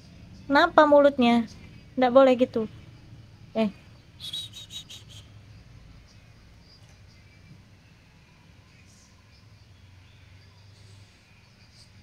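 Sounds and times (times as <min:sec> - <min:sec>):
faint room hum: 0:00.0 - 0:12.0
short high chirps: 0:04.2 - 0:05.3.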